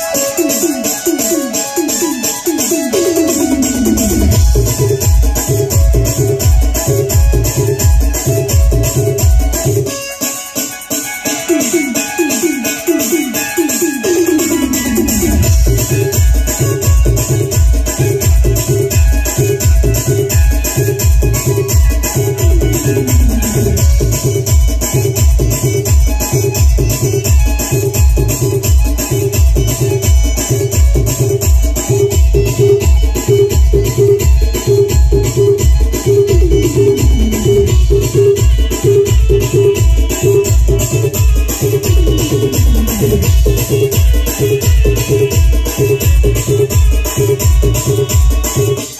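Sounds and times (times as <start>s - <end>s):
fast high ticking percussion: 0.0s - 48.9s
heavy bass beat: 3.0s - 9.9s, 14.0s - 48.5s.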